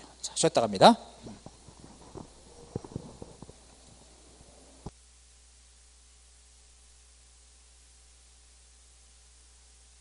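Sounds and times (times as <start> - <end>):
steady low hum: 0.0 - 10.0
microphone handling knocks: 1.2 - 3.7.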